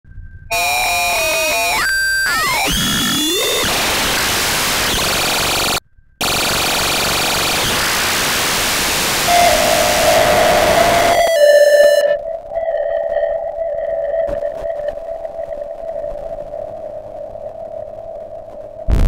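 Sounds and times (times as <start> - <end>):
held electronic tones: 0.5 - 19.0
harsh noise wash: 2.6 - 19.0.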